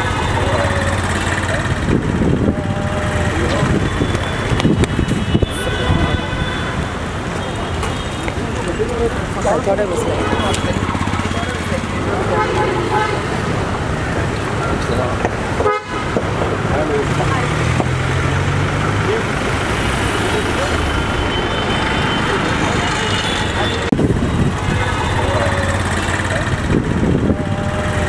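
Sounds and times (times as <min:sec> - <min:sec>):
people talking: 0:00.0 - 0:06.5, 0:07.3 - 0:15.4, 0:16.6 - 0:28.0
vehicle horns tooting: 0:00.0 - 0:13.7, 0:15.5 - 0:16.3, 0:20.4 - 0:26.4
engines running: 0:00.0 - 0:28.0.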